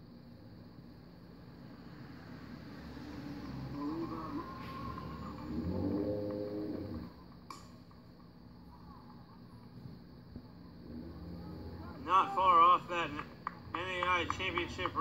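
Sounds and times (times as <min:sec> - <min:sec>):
drawn-out yell: 0:02.9 - 0:07.2, 0:10.8 - 0:14.3
people shouting outdoors: 0:11.2 - 0:15.0.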